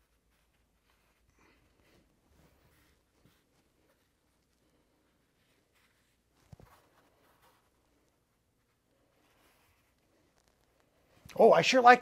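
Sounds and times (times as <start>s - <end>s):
fabric rustling: 0.0s - 11.3s.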